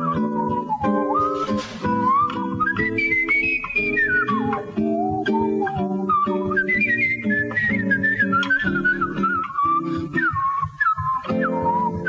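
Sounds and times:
jazz guitar chords: 0:00.0 - 0:12.0
man whistling a jazz melody: 0:00.0 - 0:12.0.

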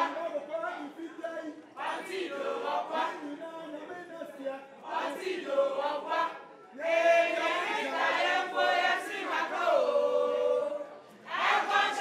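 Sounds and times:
several voices singing: 0:00.0 - 0:00.4, 0:01.8 - 0:03.8, 0:04.8 - 0:12.0.

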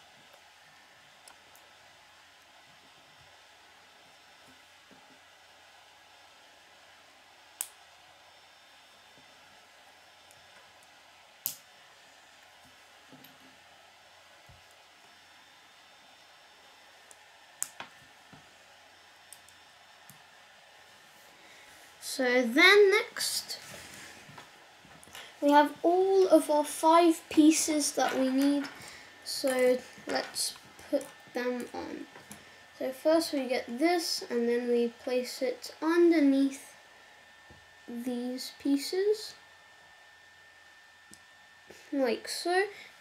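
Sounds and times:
faint steady hiss: 0:00.0 - 0:43.0.

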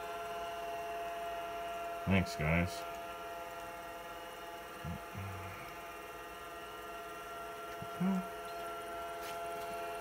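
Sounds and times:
computer hum and whine: 0:00.0 - 0:10.0.

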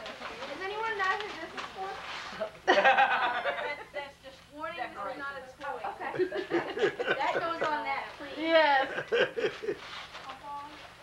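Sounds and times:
people laughing and chuckling: 0:02.6 - 0:04.0, 0:06.0 - 0:07.9, 0:08.6 - 0:10.0.

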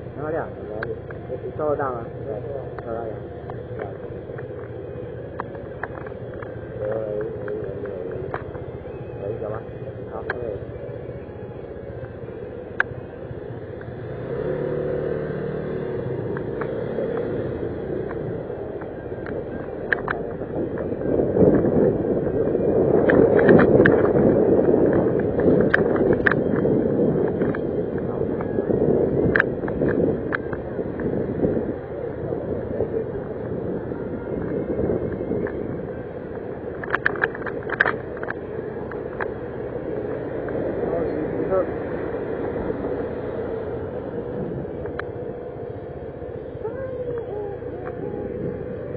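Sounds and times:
motor scooter engine: 0:00.0 - 0:48.9.

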